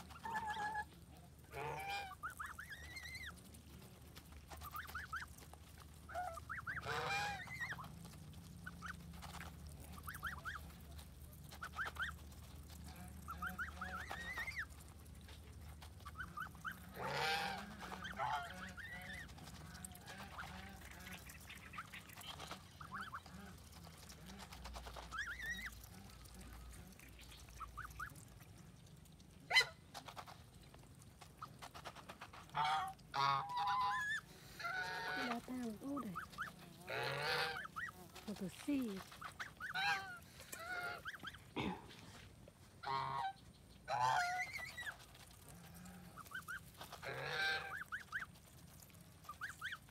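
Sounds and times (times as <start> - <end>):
geese honking: 0.0 - 3.5, 4.5 - 14.8, 16.0 - 28.2, 32.2 - 41.6, 42.8 - 48.4.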